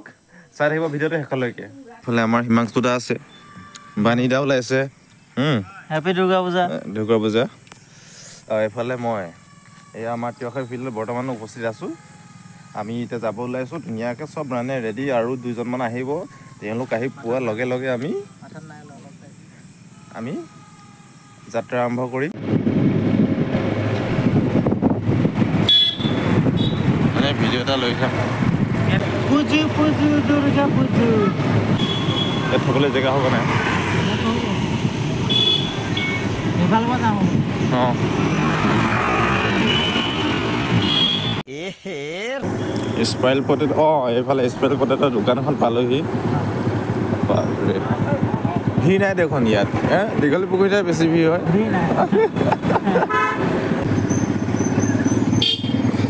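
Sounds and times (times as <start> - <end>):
people talking and calling out: 0.0 - 22.4, 26.9 - 39.7, 41.5 - 52.9
vehicle road noise: 0.0 - 41.5, 42.2 - 56.0
street traffic: 0.0 - 56.0
vehicle horn toots: 25.6 - 27.0, 31.7 - 33.1, 35.2 - 36.4, 39.5 - 41.4, 53.0 - 56.0.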